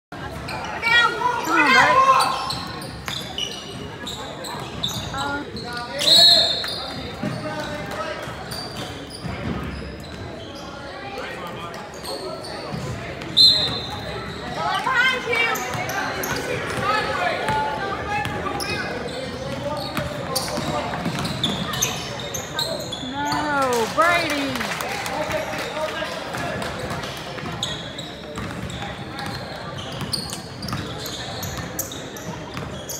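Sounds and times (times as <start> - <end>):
spectators voices and shouts: 0.6 - 2.6.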